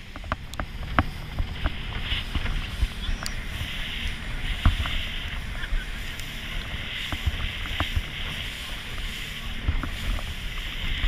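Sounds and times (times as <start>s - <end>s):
hull knocking on waves: 0.0s - 11.0s
low rumble: 0.0s - 11.0s
water rushing: 0.0s - 11.0s
wind on microphone: 0.0s - 11.0s.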